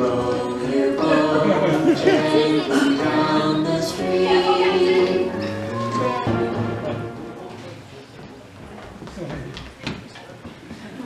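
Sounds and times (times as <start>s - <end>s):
choir singing held notes: 0.0s - 7.7s.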